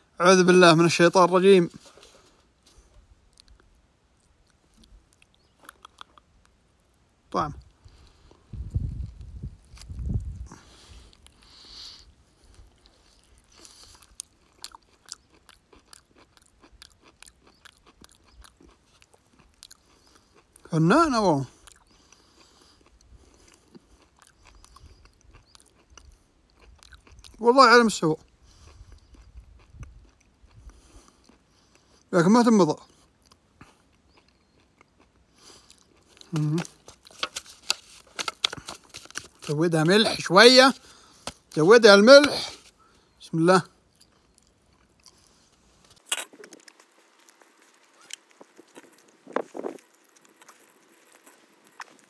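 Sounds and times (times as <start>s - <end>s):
person chewing: 2.0s - 7.0s, 7.6s - 20.7s, 21.5s - 27.4s, 28.2s - 32.1s, 32.8s - 52.0s.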